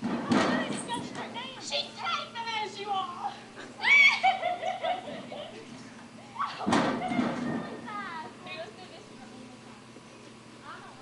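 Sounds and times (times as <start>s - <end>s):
children calling out and chattering: 0.2s - 10.0s.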